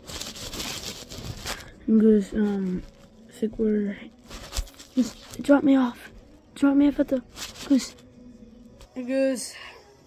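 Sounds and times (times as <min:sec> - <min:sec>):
fabric rustling against microphone: 0:00.0 - 0:06.0, 0:07.0 - 0:08.1.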